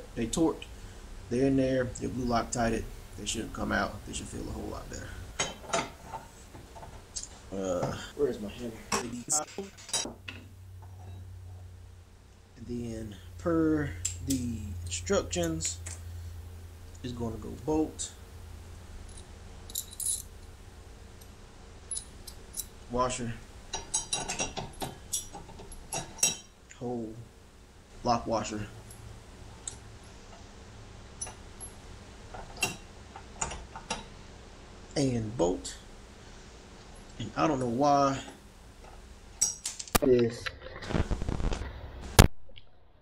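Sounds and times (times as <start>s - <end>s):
steady low hum: 0.0s - 42.3s
metal hardware clinking: 19.0s - 20.4s, 21.8s - 22.8s, 23.7s - 26.5s, 31.2s - 34.1s, 38.8s - 40.0s.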